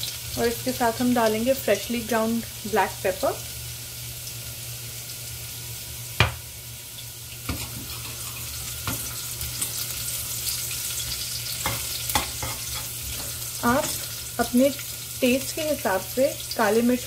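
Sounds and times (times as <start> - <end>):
garlic sizzling in hot oil: 0.0 - 17.0
metal spoon clinking against pan: 11.6 - 14.1.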